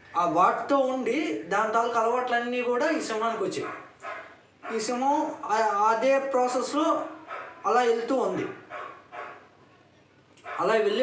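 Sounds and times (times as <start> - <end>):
man calling out: 4.6 - 8.6.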